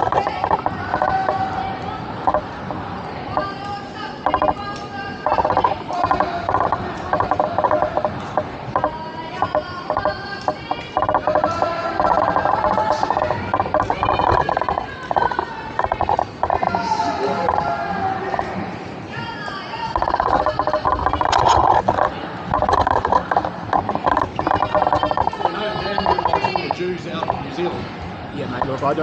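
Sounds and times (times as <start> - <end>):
rapid ratchet-like clicking: 0.0 - 18.6, 19.9 - 27.6
indistinct voices talking: 0.0 - 29.0.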